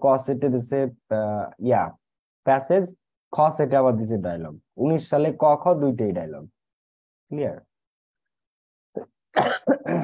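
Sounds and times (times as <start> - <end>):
man coughing: 9.0 - 10.0.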